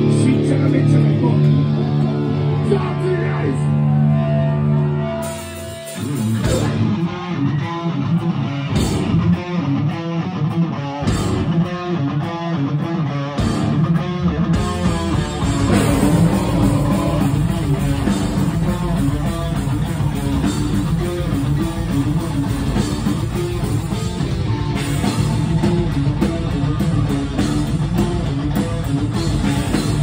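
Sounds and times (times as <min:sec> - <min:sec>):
heavy rock band playing: 0:00.0 - 0:30.0.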